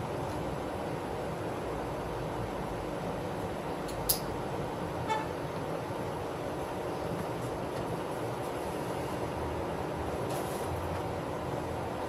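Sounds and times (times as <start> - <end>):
parking lot and traffic noise: 0.0 - 12.0
sharp click: 3.9 - 4.3.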